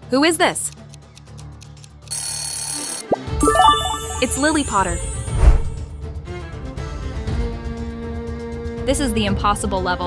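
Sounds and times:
alarm clock bell ringing: 3.4s - 5.4s.

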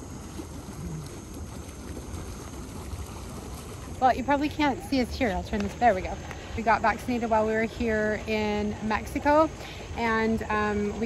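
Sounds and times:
hot tub water churning: 0.0s - 11.0s.

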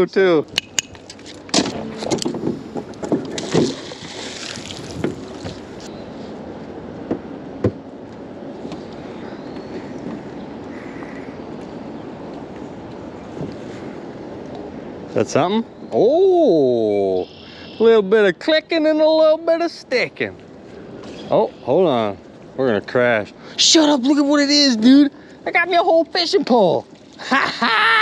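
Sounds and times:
wind and water hiss: 0.0s - 28.0s.

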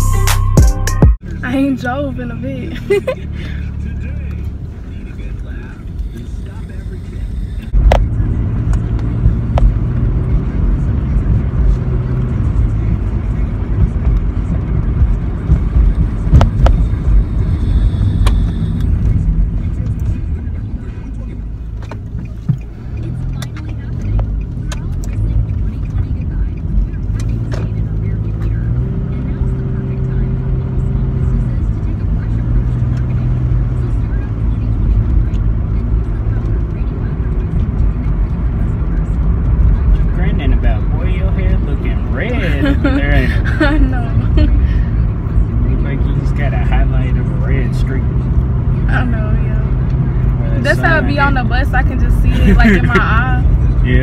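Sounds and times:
engine and road rumble: 0.0s - 54.0s.

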